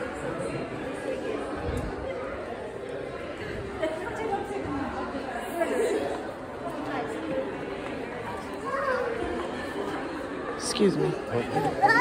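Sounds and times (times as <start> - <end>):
indistinct chatter of shoppers: 0.0 - 12.0.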